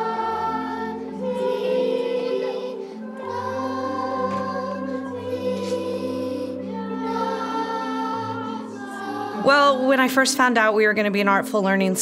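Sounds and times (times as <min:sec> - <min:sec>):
choir singing held notes: 0:00.0 - 0:10.3.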